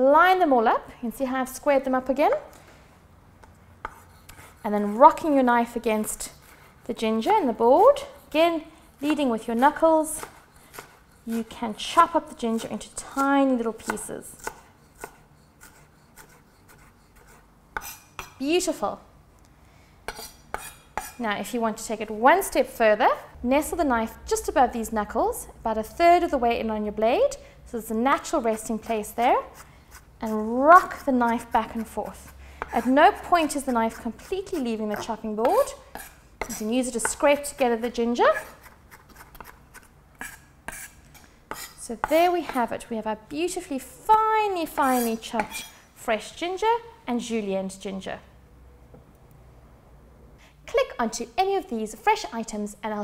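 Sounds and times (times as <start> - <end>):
knife chopping on wooden board: 10.2 - 11.0, 13.8 - 18.4.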